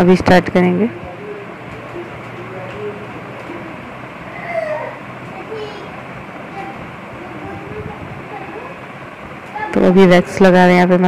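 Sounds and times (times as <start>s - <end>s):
faint distant voices: 0.0s - 11.0s
steady background noise: 0.0s - 11.0s.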